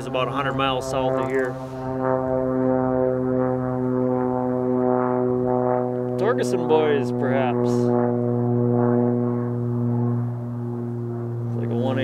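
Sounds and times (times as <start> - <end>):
propeller airplane droning overhead: 0.0 - 12.0.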